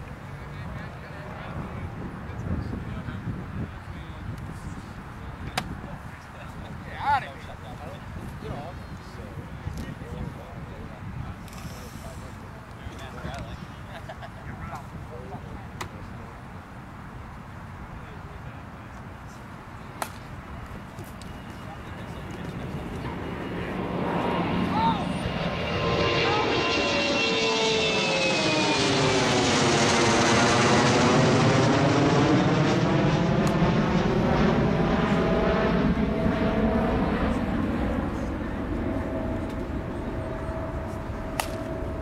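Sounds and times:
jet airplane flying overhead: 0.0s - 42.0s.

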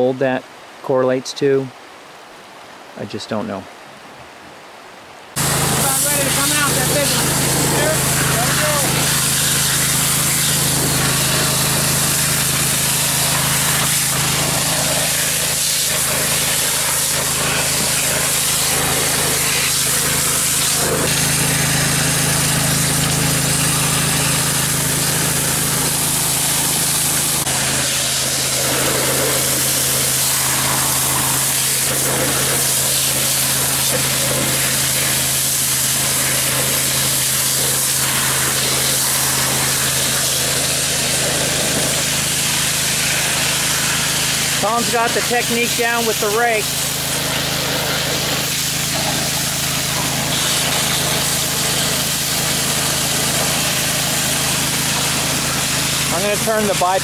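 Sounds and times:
water hissing from nozzle: 5.3s - 57.0s
water pouring from pipe: 5.4s - 57.0s
water pump engine running: 5.4s - 57.0s.

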